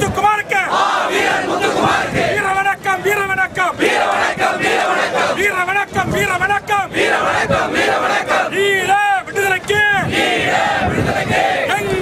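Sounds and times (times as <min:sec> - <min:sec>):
crowd chanting slogans: 0:00.4 - 0:06.0, 0:06.6 - 0:09.0, 0:09.6 - 0:12.0.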